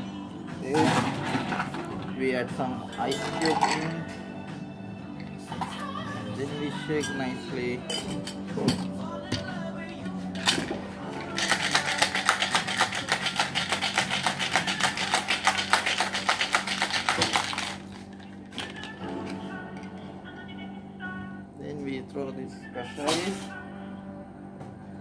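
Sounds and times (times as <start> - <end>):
ice rattling in cocktail shaker: 3.1 - 4.0, 11.2 - 19.0.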